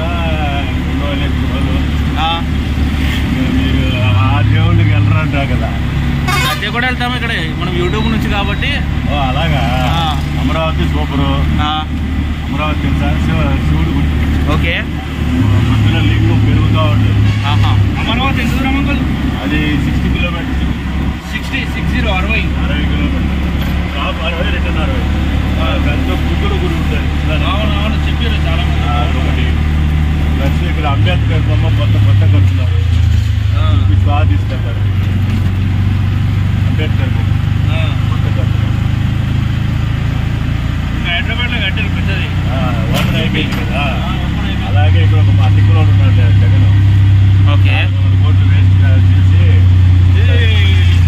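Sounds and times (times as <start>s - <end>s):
auto-rickshaw engine running: 0.0s - 51.0s.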